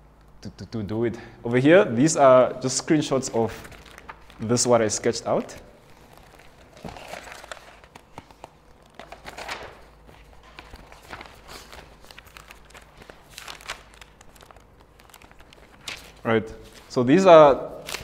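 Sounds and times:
paper rustling: 3.1 - 17.1, 17.8 - 18.0.

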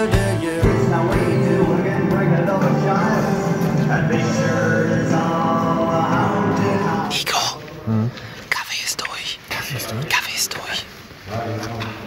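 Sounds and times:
man whispering: 7.1 - 11.0.

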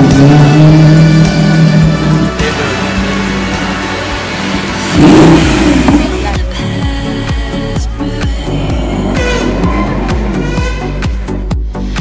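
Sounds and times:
sports car engine revving: 0.0 - 6.5
background music: 0.0 - 12.0.

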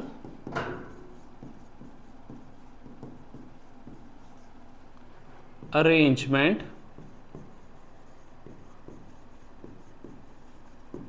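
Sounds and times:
chalk strokes on board: 0.1 - 11.0.

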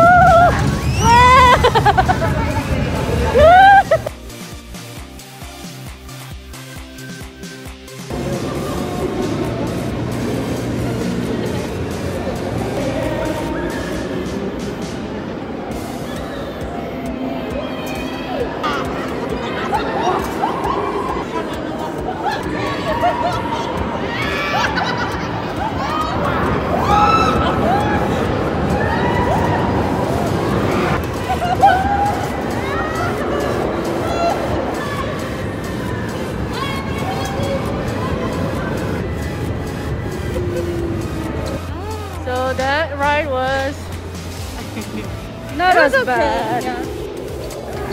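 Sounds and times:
crowd babble: 0.0 - 47.9
music: 0.0 - 47.9
steady low rumble: 8.1 - 16.0
voices: 8.1 - 47.9.

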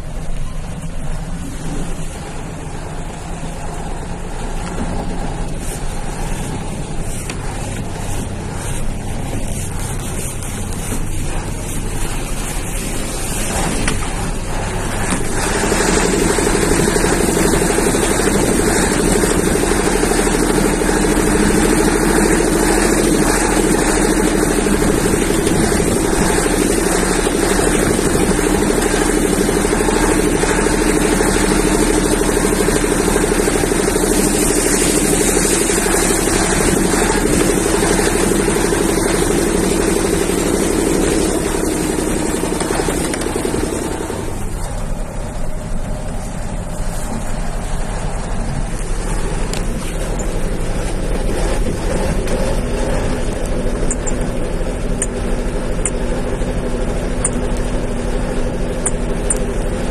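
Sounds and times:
road noise on dirt track: 0.0 - 59.9
vehicle engine running: 0.0 - 59.9.

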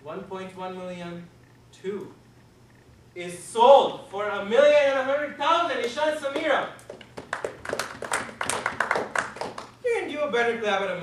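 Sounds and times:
people clapping: 5.8 - 9.8.

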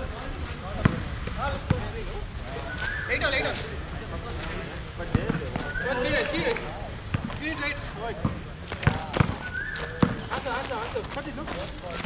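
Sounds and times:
people talking: 0.0 - 12.0
basketball bouncing on concrete: 0.8 - 1.9, 5.0 - 5.7, 7.0 - 7.4, 8.2 - 10.4.

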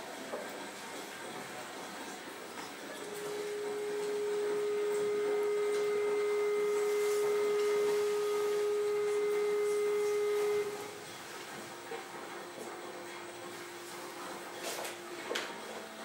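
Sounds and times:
steady pure tone: 2.9 - 16.0.

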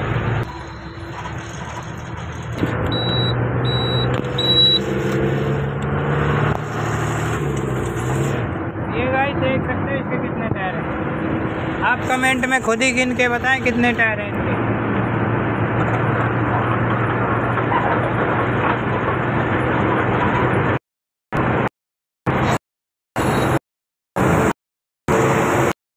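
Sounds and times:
engine hum: 0.0 - 20.8
short high beeps: 0.5 - 1.2, 2.9 - 4.9
rushing wind: 4.2 - 20.8.

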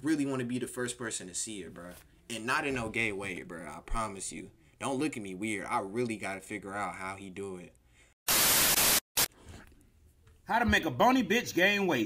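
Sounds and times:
white-noise static bursts: 8.3 - 9.3.

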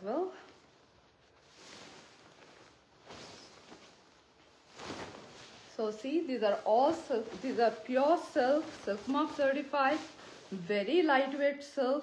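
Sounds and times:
silk fabric rustling and swishing: 0.0 - 12.0.

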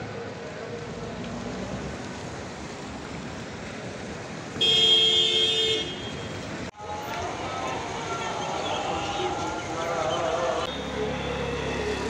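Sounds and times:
traffic on wet roads: 0.0 - 12.0
vehicle horn: 4.6 - 6.3.

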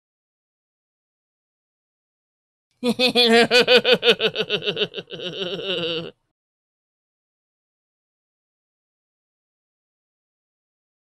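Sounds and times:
woman laughing: 2.8 - 6.1.

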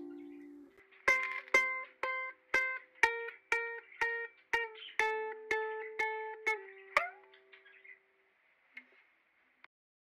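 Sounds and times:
ukulele pitch slide: 0.0 - 2.8
ukulele strum ringing: 0.0 - 7.4.

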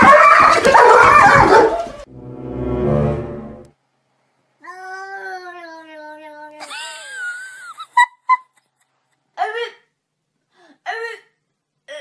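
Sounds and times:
dog barking: 0.0 - 2.0
short low sound: 2.1 - 3.7.

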